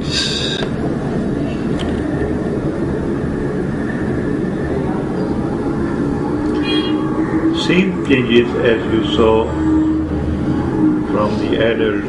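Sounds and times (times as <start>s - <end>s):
low machine rumble: 0.0s - 12.0s.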